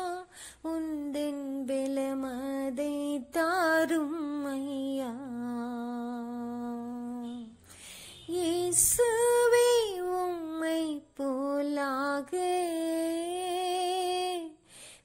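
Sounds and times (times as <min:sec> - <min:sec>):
woman singing worship song: 0:00.0 - 0:07.6, 0:08.3 - 0:14.6.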